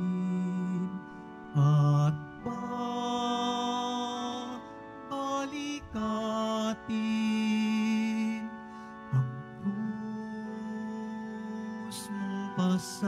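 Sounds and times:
person singing a hymn: 0.0 - 13.0
sustained accompaniment: 0.0 - 13.0.

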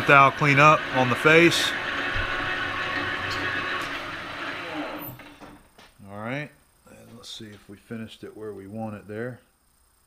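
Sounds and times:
lathe tool cutting aluminum: 0.0 - 5.5
lathe spindle running: 0.0 - 5.6.

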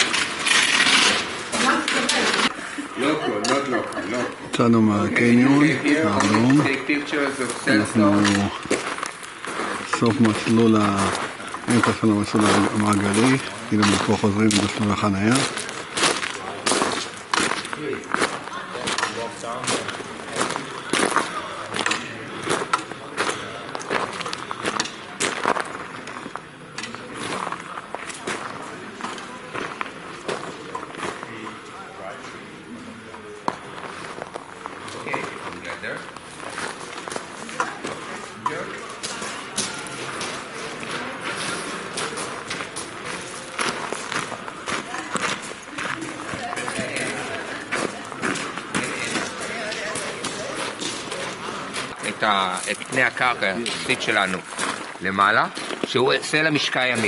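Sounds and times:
footsteps crunching on gravel: 5.1 - 31.7, 33.2 - 57.0.

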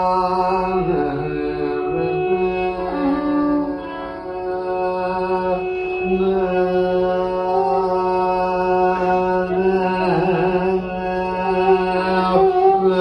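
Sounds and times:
man singing long gliding notes: 0.0 - 13.0.

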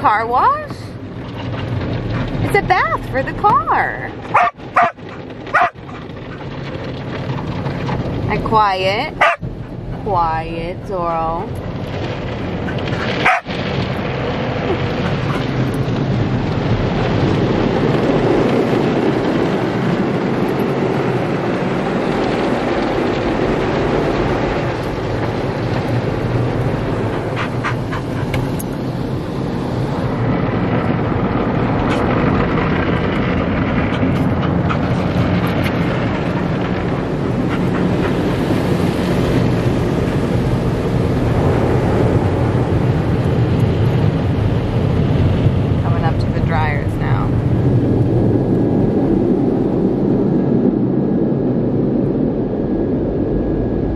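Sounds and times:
car wash water spray and brushes: 0.0 - 52.2
dog barking: 4.3 - 6.0, 9.2 - 9.4, 13.1 - 13.5.

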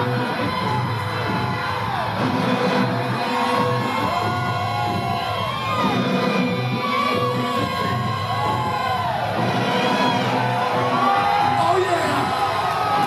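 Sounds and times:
faint crowd: 0.0 - 13.0.

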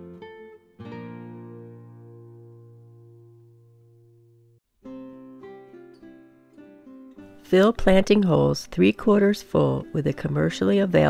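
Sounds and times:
acoustic guitar music: 0.0 - 11.0.

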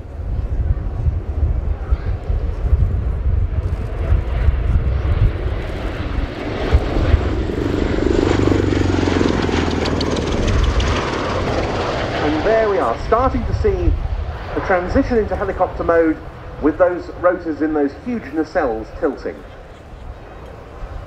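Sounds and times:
tiltrotor aircraft droning past: 0.0 - 21.0.

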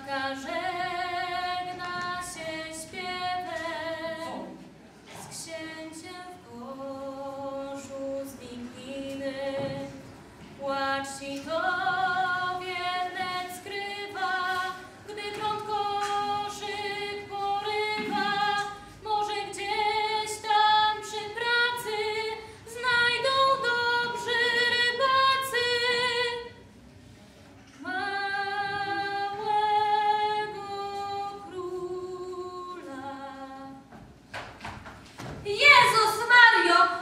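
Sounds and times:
woman singing unaccompanied: 0.0 - 4.6, 5.3 - 10.0, 10.6 - 26.6, 27.8 - 33.9, 35.4 - 37.0.

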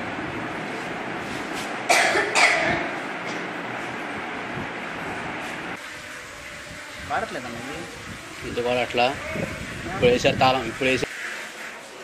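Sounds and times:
person coughing: 1.9 - 2.9.

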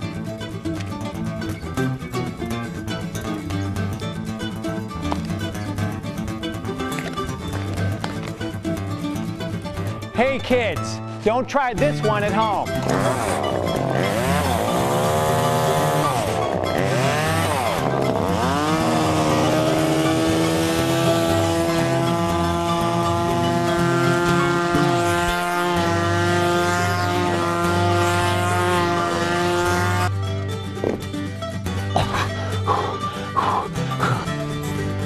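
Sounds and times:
bass-heavy music: 0.0 - 35.0
chainsaw engine revving: 12.7 - 30.1.

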